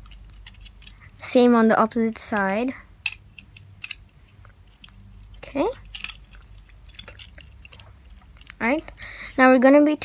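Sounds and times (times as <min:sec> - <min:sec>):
plastic bricks clicking together: 0:02.4 - 0:04.1.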